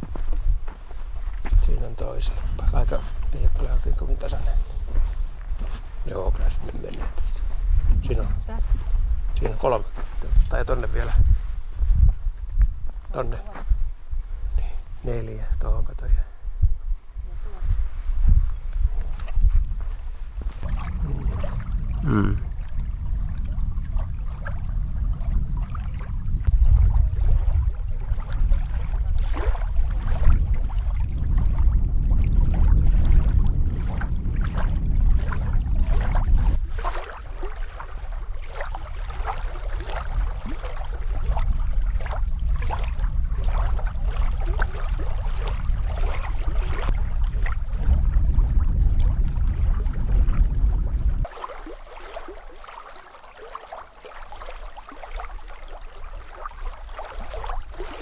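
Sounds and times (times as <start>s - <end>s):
lake waves lapping on rocky shore: 0.0s - 11.9s, 17.3s - 58.0s
wind rumble on microphone: 0.0s - 52.6s, 54.4s - 58.0s.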